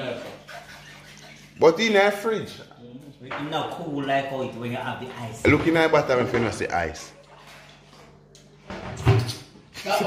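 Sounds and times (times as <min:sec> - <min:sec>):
man speaking: 0:05.4 - 0:07.2.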